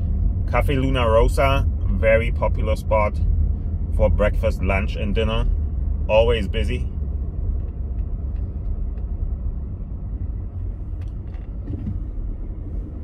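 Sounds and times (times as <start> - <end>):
car cabin road rumble: 0.0 - 13.0.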